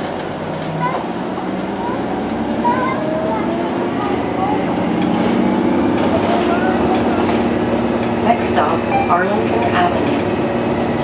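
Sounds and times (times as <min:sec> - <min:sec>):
passengers talking: 0:00.0 - 0:11.0
streetcar low hum: 0:00.0 - 0:11.0.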